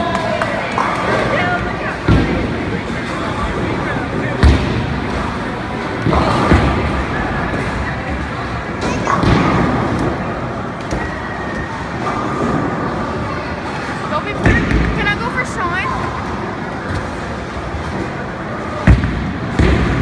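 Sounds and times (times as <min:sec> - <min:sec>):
indistinct voices and chatter: 0:00.0 - 0:20.0.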